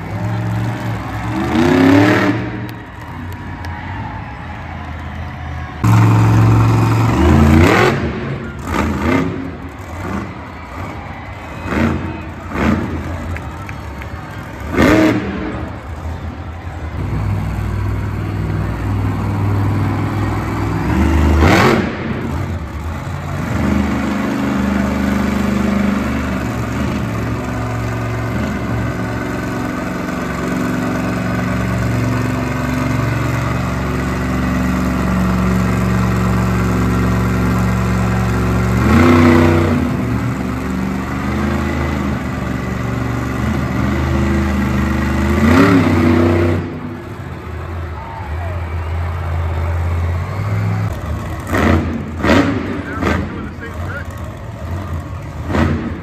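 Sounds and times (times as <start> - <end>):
monster truck engines revving: 0.0 - 56.0.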